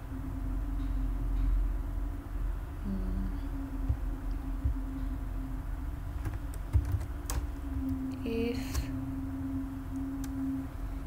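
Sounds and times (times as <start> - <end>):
low background rumble: 0.0 - 11.0
steady low hum: 0.0 - 11.0.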